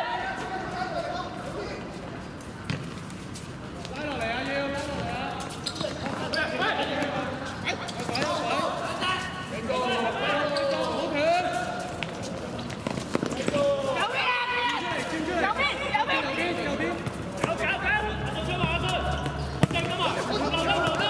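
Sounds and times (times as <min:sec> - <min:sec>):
players shouting calls: 0:00.0 - 0:01.9, 0:04.0 - 0:12.0, 0:13.3 - 0:21.0.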